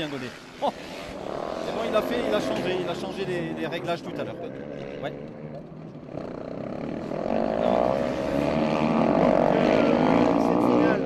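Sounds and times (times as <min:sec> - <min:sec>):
racing motorcycle engine: 0:00.0 - 0:11.0.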